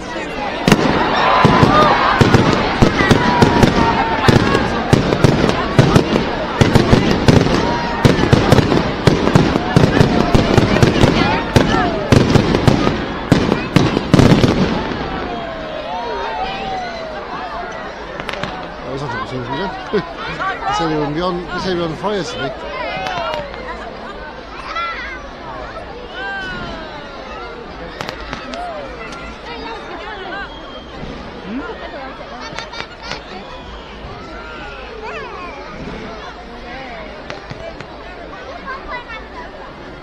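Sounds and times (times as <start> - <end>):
fireworks bangs and crackles: 0.0 - 15.9, 18.0 - 19.9, 20.5 - 23.8, 27.9 - 30.1, 35.6 - 36.4, 37.1 - 38.5
crowd chatter: 0.0 - 40.0.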